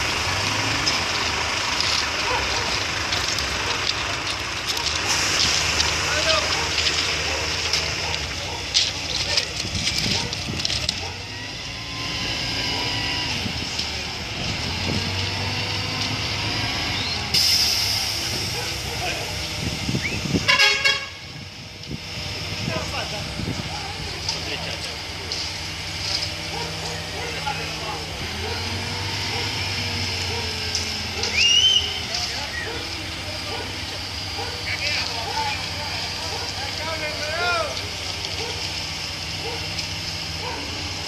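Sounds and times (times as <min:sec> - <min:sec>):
crane diesel engine running: 0:00.0 - 0:41.0
faint workers' voices: 0:00.7 - 0:16.2, 0:16.9 - 0:20.4, 0:22.1 - 0:41.0
loud hissing: 0:04.0 - 0:07.5, 0:17.1 - 0:19.4
high whistle-like tone: 0:31.3 - 0:32.7.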